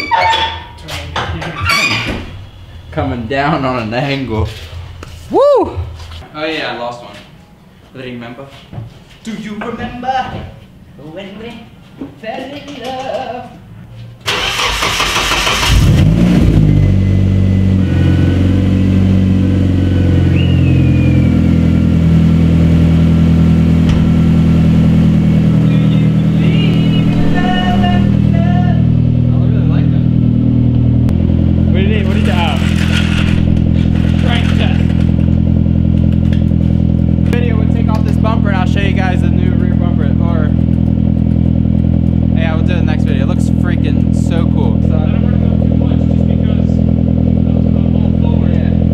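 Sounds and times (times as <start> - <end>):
car engine idling: 14.3 - 48.9
voices talking: 25.3 - 31.1, 31.7 - 35.1.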